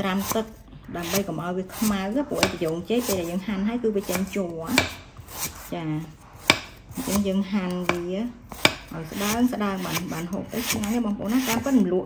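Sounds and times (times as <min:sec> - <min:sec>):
knife chopping on wooden block: 0:00.2 - 0:03.3, 0:04.0 - 0:05.7, 0:06.4 - 0:11.7.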